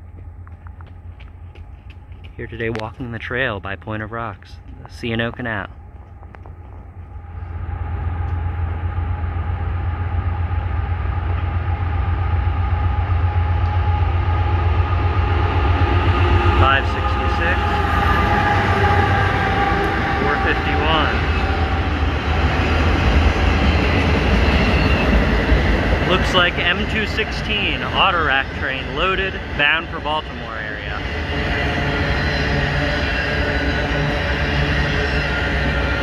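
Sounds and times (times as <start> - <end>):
diesel locomotives rumbling: 0.0 - 36.0
high wheel squeals: 16.7 - 25.6, 30.9 - 36.0.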